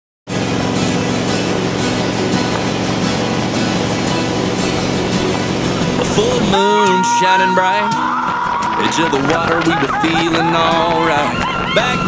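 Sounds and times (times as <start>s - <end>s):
country music: 0.3s - 12.0s
steady rushing noise: 0.3s - 12.0s.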